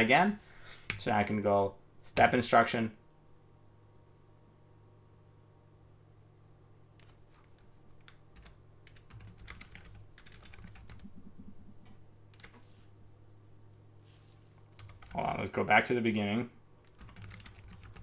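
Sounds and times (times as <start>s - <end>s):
faint low hum: 0.0s - 18.0s
computer keyboard typing: 7.0s - 12.6s, 14.7s - 15.5s, 16.8s - 18.0s.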